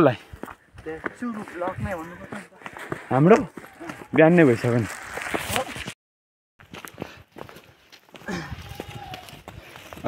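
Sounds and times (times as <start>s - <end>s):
footsteps on dirt road: 0.0s - 5.9s, 6.6s - 10.0s.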